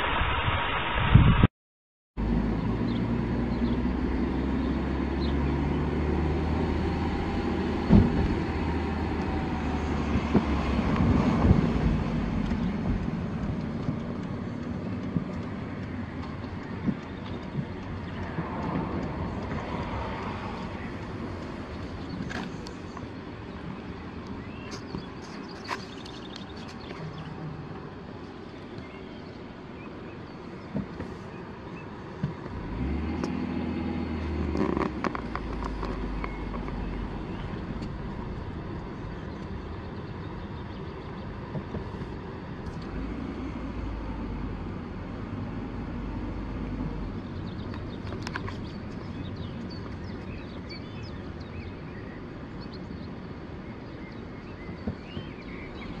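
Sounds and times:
engine and tyre rumble: 2.2 - 56.0.

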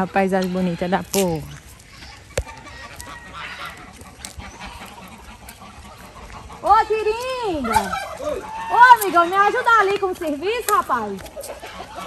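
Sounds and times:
geese honking: 0.0 - 12.0.

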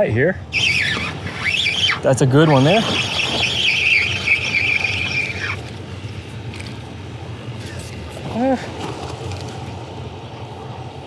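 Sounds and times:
fishing reel whining: 0.5 - 6.8.

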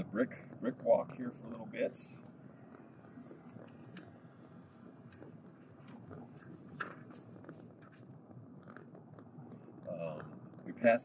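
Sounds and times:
tyres rumbling over brick street: 0.0 - 11.0.

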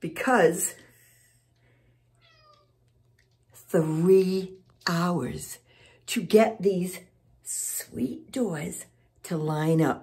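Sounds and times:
cat meowing faintly: 2.2 - 2.8.

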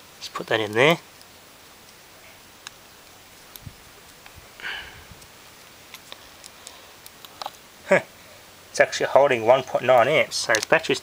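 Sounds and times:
person sniffing: 4.6 - 5.2
test leads clicking and handling: 9.9 - 10.8.

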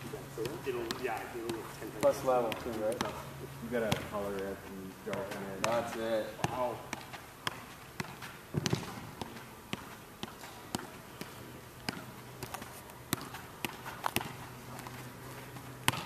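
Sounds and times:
steady low hum: 0.0 - 16.0
foot tapping soccer ball: 0.3 - 16.0.

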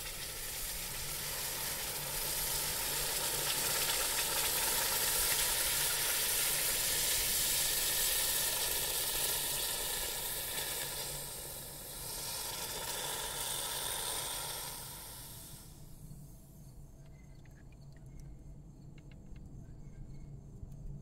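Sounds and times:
hot metal sizzling in water: 0.0 - 15.8.

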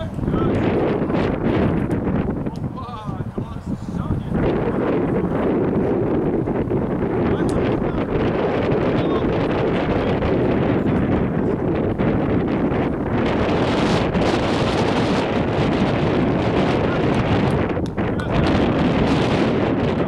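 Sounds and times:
wind noise on microphone: 0.0 - 20.0.

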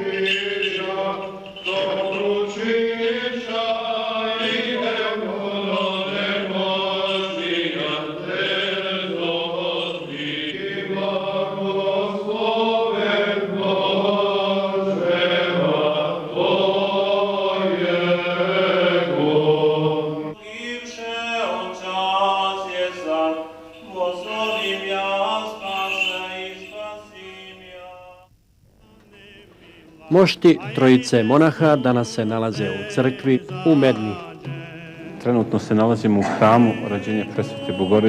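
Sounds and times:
men chanting: 0.0 - 38.0.

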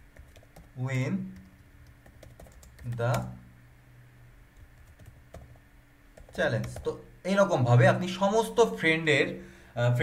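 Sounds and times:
keyboard keystrokes: 1.4 - 3.3, 4.6 - 5.5.

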